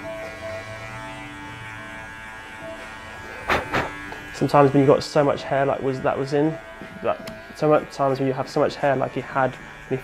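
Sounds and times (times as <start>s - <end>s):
electric hair clippers buzzing: 0.0s - 10.0s
faint background music: 0.0s - 10.0s.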